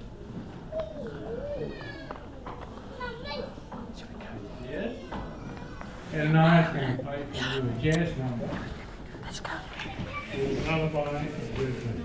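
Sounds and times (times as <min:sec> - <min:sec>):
people talking quietly: 0:00.0 - 0:12.0
child's voice: 0:02.8 - 0:03.9, 0:09.7 - 0:10.4.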